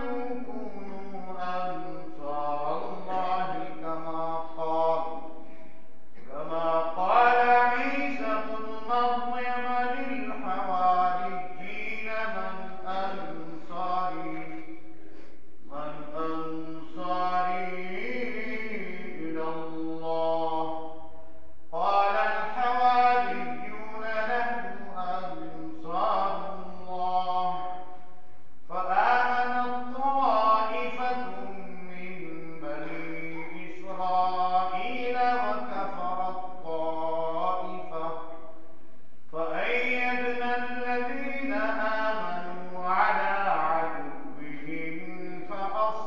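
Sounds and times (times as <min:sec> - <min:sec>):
man chanting a recitation: 0:00.0 - 0:38.7, 0:39.3 - 0:46.0.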